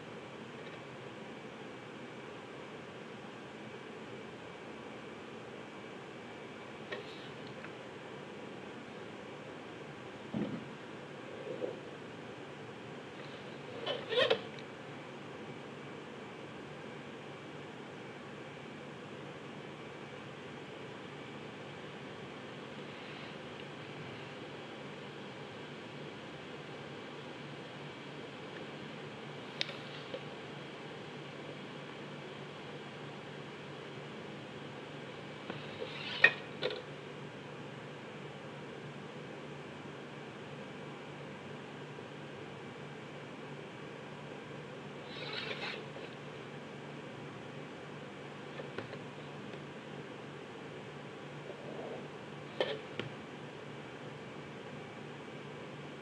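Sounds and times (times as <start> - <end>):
room hum and hiss: 0.0 - 56.0.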